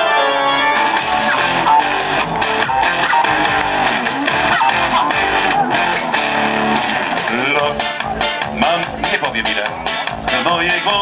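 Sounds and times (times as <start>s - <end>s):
live dance band music: 0.0s - 11.0s.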